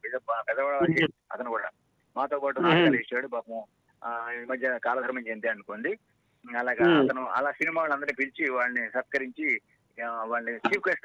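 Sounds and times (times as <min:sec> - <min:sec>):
man speaking animatedly: 0:00.0 - 0:11.0.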